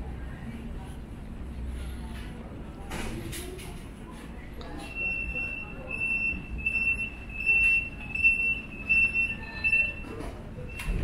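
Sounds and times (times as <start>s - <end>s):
low rumble of hall noise: 0.0s - 11.0s.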